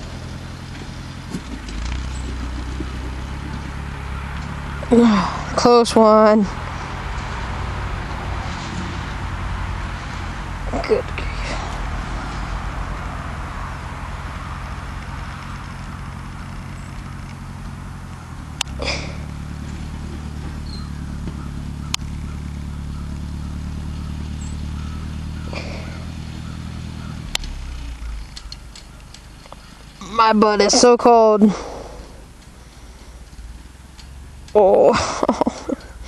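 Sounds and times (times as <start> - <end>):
tractor engine running: 0.0 - 36.0.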